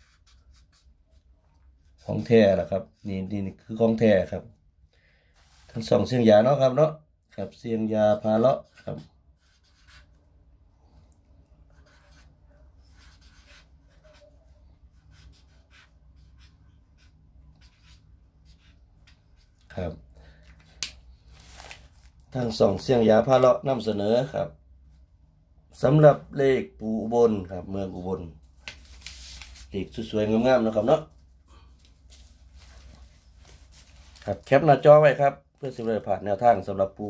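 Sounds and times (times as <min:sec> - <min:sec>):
pen scratching on paper: 0:00.0 - 0:01.2, 0:08.1 - 0:10.2, 0:11.6 - 0:19.5
man speaking: 0:05.8 - 0:09.1, 0:19.7 - 0:20.0, 0:22.3 - 0:24.6, 0:25.7 - 0:28.4, 0:29.7 - 0:31.2, 0:34.2 - 0:37.0.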